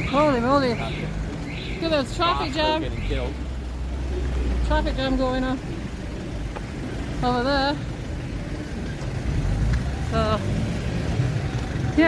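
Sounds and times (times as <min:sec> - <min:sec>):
car engines rumbling: 0:00.0 - 0:12.0.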